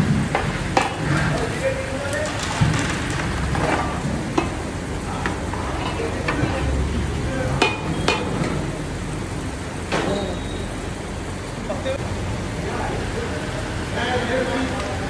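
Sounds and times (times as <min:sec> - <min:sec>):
food sizzling: 0:00.0 - 0:14.6
metal ladle knocking against pot: 0:07.6 - 0:08.5.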